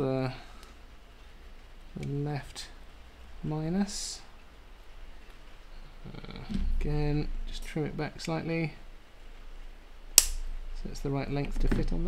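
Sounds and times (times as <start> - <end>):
side cutters snipping wire: 10.2 - 10.4.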